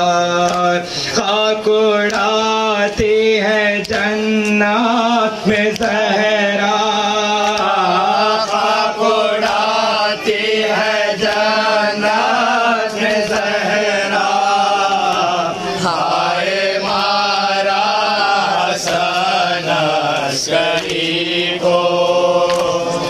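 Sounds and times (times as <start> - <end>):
man singing lament through microphone: 0.0 - 20.4
men chanting: 0.0 - 23.0.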